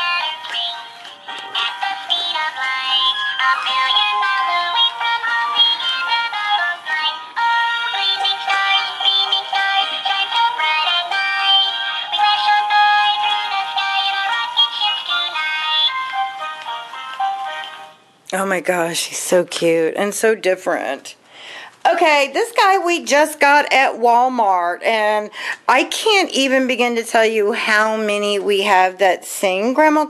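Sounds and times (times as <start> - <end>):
toy playing a song with singing: 0.0 - 18.1.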